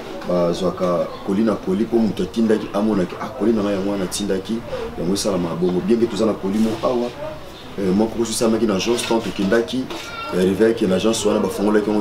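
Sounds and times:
man speaking: 0.2s - 12.0s.

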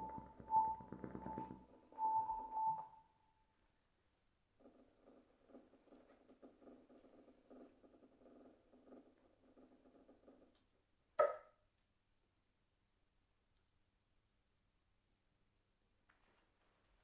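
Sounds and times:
faint crackly texture: 0.0s - 3.8s, 4.5s - 10.7s.

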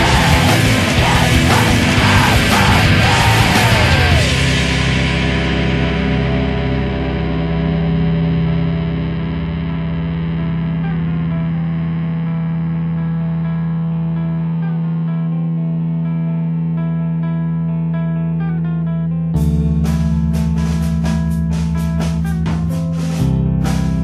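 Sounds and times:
distorted electric guitar: 0.0s - 24.0s.

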